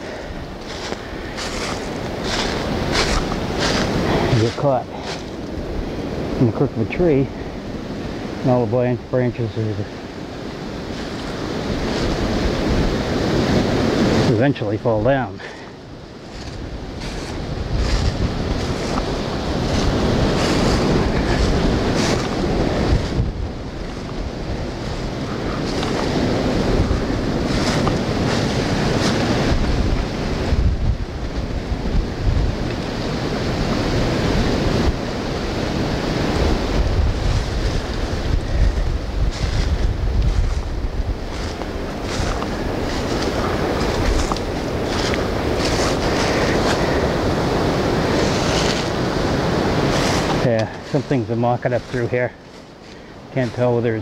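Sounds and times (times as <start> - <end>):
footsteps through dry leaves: 0.0 - 6.2, 10.4 - 14.0, 15.4 - 30.7, 35.6 - 53.8
wind buffeting microphone: 0.0 - 54.0.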